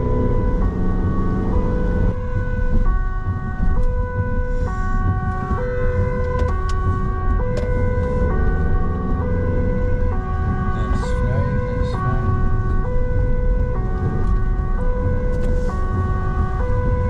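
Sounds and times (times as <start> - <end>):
engine and road noise: 0.0 - 17.0
two-tone police siren: 0.0 - 17.0.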